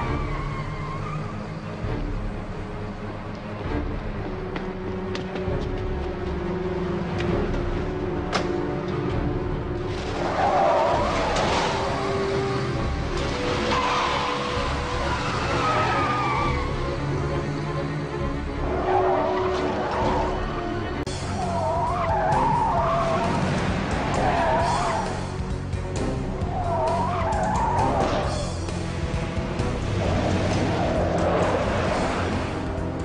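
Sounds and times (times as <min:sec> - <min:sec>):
car tyres squealing: 0:00.0 - 0:01.7, 0:10.0 - 0:17.2, 0:18.6 - 0:25.4, 0:26.3 - 0:28.7, 0:29.6 - 0:32.8
car engine noise: 0:00.0 - 0:33.0
film score music: 0:00.0 - 0:33.0.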